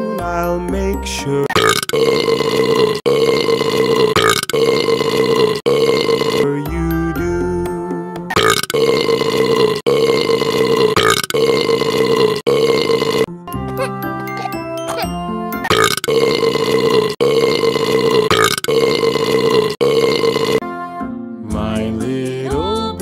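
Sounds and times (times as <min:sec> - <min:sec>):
children's song music: 0:00.0 - 0:01.6, 0:06.4 - 0:08.4, 0:13.4 - 0:15.7, 0:20.6 - 0:23.0
long burps: 0:01.5 - 0:06.6, 0:08.3 - 0:14.0, 0:14.9 - 0:20.6.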